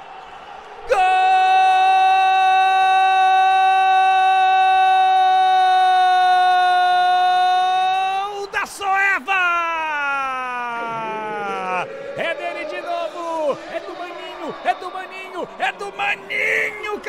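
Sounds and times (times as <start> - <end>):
commentator shouting goal: 6.9 - 17.0.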